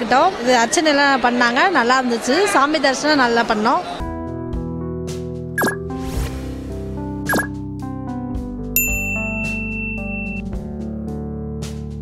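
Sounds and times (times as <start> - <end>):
background music with beat: 7.1 - 12.0
bell-like ding: 8.8 - 10.4.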